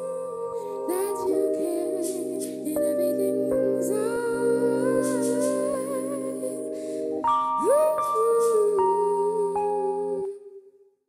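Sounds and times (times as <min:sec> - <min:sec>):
soft slow background music: 0:00.0 - 0:10.9.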